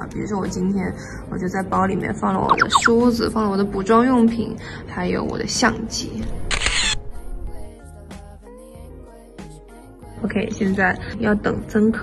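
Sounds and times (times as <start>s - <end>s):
background music: 0.0s - 12.0s
camera shutter: 6.5s - 7.0s.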